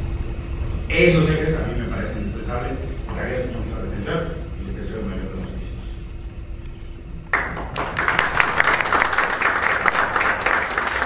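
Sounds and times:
audience applause: 0:07.3 - 0:11.0.

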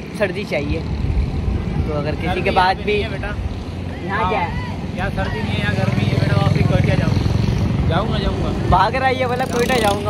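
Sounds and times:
men talking: 0:00.0 - 0:10.0
motorcycle engine running: 0:05.5 - 0:10.0.

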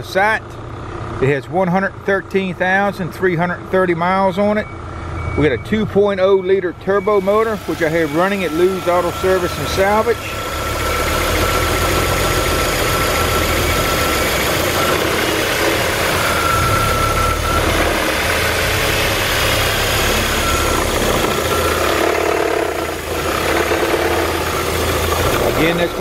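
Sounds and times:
car engine idling: 0:00.0 - 0:26.0
thin engine whine: 0:03.8 - 0:26.0.

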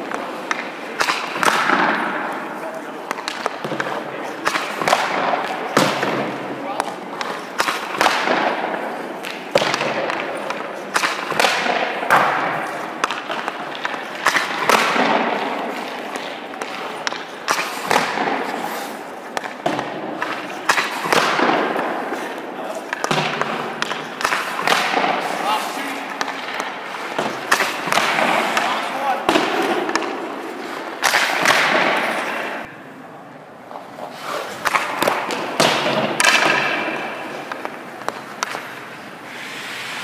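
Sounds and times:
puck knocking goalie pads: 0:00.0 - 0:02.3, 0:03.0 - 0:18.6, 0:19.3 - 0:32.7, 0:34.6 - 0:38.7
skates scraping ice: 0:00.0 - 0:32.7, 0:33.6 - 0:40.0
stick striking puck: 0:00.0 - 0:32.7, 0:33.7 - 0:39.0.

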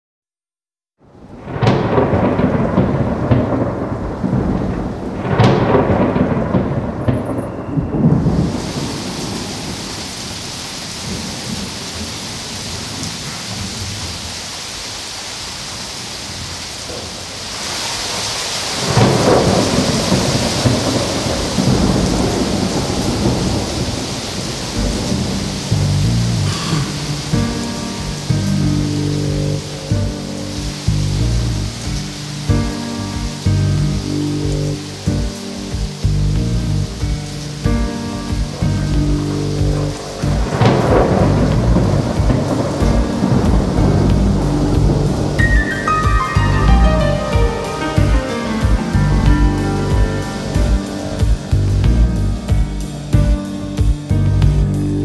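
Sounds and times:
rolling thunder: 0:01.0 - 0:14.4, 0:16.1 - 0:55.0
heavy rain: 0:01.0 - 0:55.0
synthesizer repeated notes: 0:27.0 - 0:55.0.

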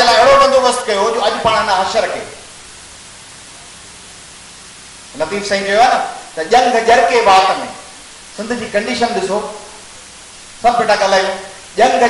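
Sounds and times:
man speaking over microphone: 0:00.0 - 0:02.5, 0:05.1 - 0:09.8, 0:10.6 - 0:12.0
steady hiss: 0:00.0 - 0:12.0.

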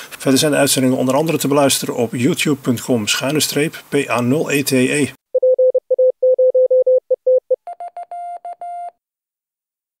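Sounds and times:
morse code beeps: 0:05.4 - 0:08.9.

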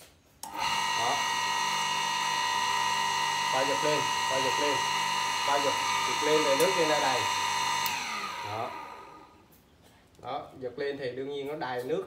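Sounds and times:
electric water pump coasting down: 0:00.4 - 0:09.4.

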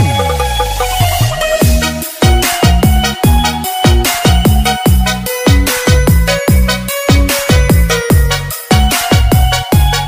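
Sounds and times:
hard kick drums: 0:00.0 - 0:10.0.

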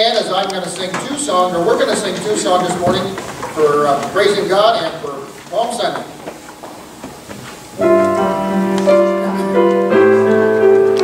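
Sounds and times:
faint shuffling and knocks: 0:00.6 - 0:08.2
keyboard sustained chord: 0:07.8 - 0:11.0.

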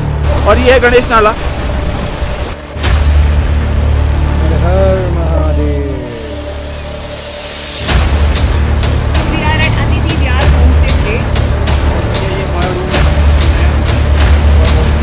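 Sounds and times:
cinematic trailer music: 0:00.0 - 0:15.0
deep bass: 0:00.0 - 0:15.0
percussion hits: 0:02.0 - 0:04.2, 0:07.2 - 0:15.0.

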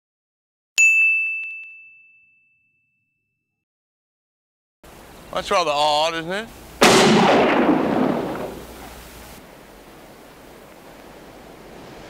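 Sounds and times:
bright chime ding: 0:00.8 - 0:03.3.

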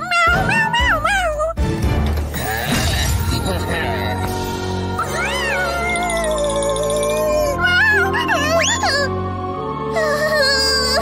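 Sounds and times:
cartoon cat meowing: 0:00.0 - 0:01.6.

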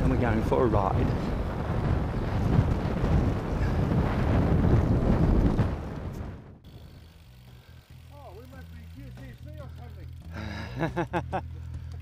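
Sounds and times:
wind buffeting microphone: 0:00.0 - 0:07.2.

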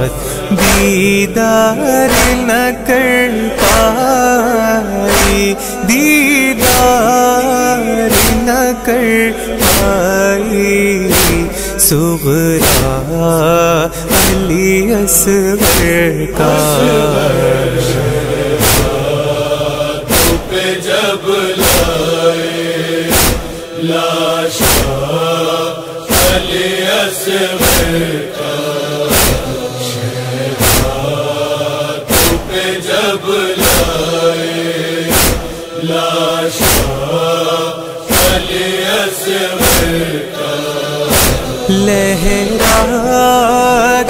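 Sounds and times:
sharp percussive chest beats: 0:00.5 - 0:01.1, 0:02.1 - 0:02.6, 0:03.6 - 0:04.0, 0:05.1 - 0:05.7, 0:08.1 - 0:08.6, 0:09.6 - 0:10.2, 0:11.1 - 0:13.2, 0:13.9 - 0:20.8, 0:21.6 - 0:22.2, 0:23.1 - 0:23.7, 0:24.6 - 0:25.1, 0:26.0 - 0:26.6, 0:27.6 - 0:28.0, 0:29.1 - 0:29.5, 0:30.6 - 0:31.1, 0:32.1 - 0:32.6, 0:33.6 - 0:34.1, 0:35.1 - 0:35.7, 0:36.6 - 0:37.1, 0:38.1 - 0:38.6, 0:39.6 - 0:40.1, 0:41.1 - 0:41.7
voices chanting melodic line: 0:16.4 - 0:21.5.

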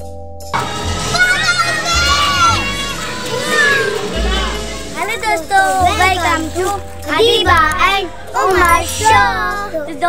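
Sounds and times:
background music: 0:00.0 - 0:10.0
children shouting and squealing: 0:00.6 - 0:09.9.

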